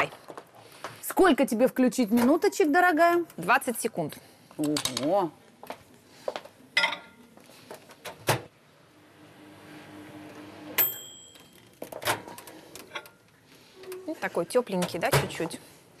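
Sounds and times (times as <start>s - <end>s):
microwave oven humming: 8.7s - 11.7s.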